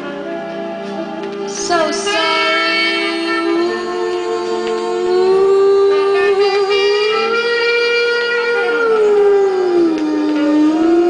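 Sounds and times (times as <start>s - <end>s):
song from vinyl record: 0.0s - 11.0s
high singing voice: 1.5s - 11.0s.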